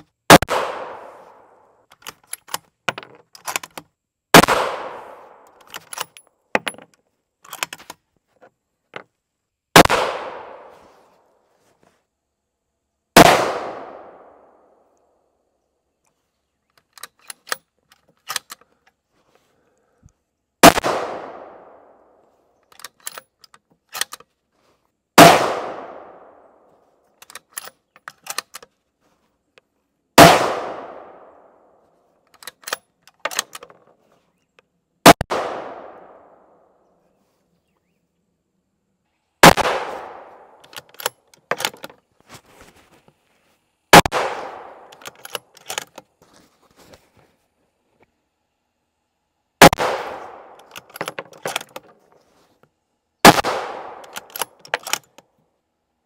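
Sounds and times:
rifle shots: 0.3 - 1.5, 4.3 - 5.4, 9.8 - 10.7, 13.2 - 14.4, 20.6 - 22.0, 25.2 - 26.6, 30.2 - 31.5, 35.0 - 36.4, 39.4 - 40.7, 43.9 - 45.3, 49.6 - 50.9, 53.2 - 55.0
rifle bolt clicks: 22.7 - 24.3, 27.2 - 28.7, 32.3 - 33.8, 40.6 - 42.0, 44.5 - 46.0, 50.3 - 51.9, 53.9 - 55.2.

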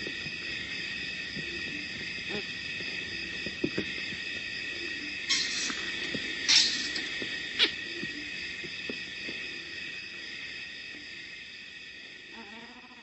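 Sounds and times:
high-pitched multi-tone whine: 0.0 - 13.0
faint low hoots: 1.4 - 3.0, 12.2 - 13.0.

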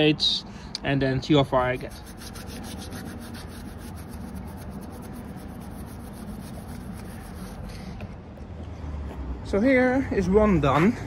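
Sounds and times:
cloth rubbing metal wheel: 1.6 - 7.7.

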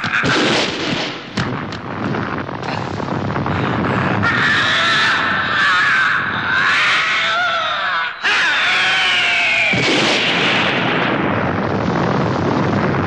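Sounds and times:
monster screeching: 4.0 - 9.8.

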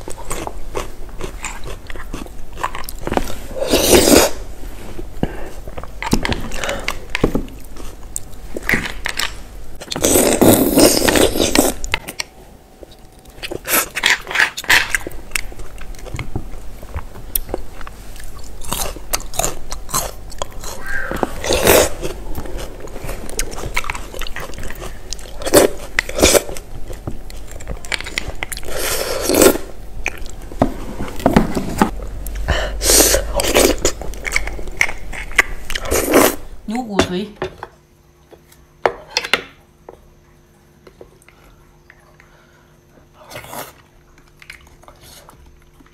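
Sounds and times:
chewing: 0.0 - 3.4, 5.6 - 30.5, 32.2 - 36.4, 43.1 - 45.9.

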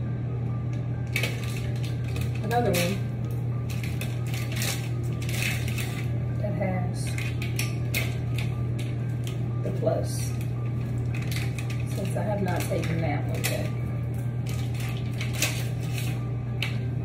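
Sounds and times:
steady low hum: 0.0 - 17.0
plastic sticks clicking and rattling: 1.1 - 3.0, 3.7 - 6.1, 7.0 - 9.4, 10.4 - 13.7, 14.4 - 16.8.

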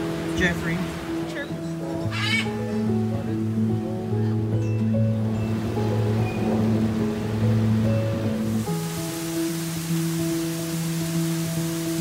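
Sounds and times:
background music: 0.0 - 12.0
parrot squawking: 2.1 - 2.8.

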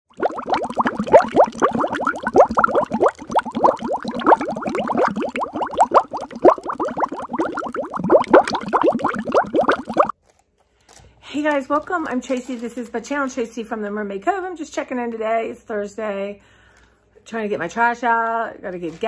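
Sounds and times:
water bubbling: 0.0 - 10.1.

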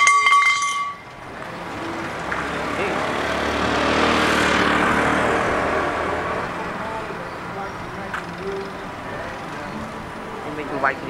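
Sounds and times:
motor vehicle passing: 1.0 - 11.0.

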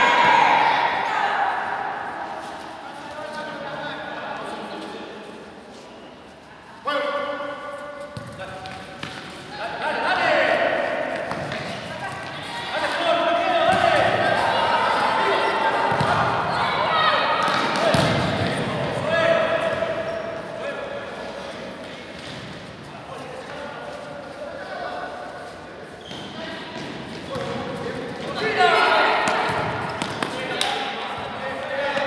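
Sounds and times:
shouting voices echoing: 9.5 - 21.8, 26.4 - 32.0.

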